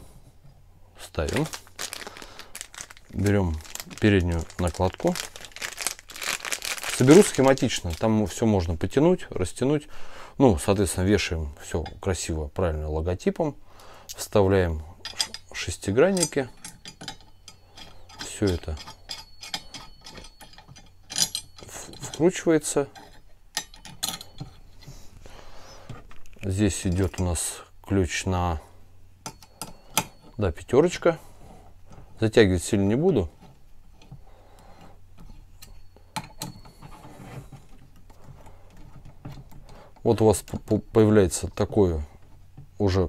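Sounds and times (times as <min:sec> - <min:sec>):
metal rattle: 0:15.0 - 0:24.8
metallic clicks and scrapes: 0:15.0 - 0:24.9.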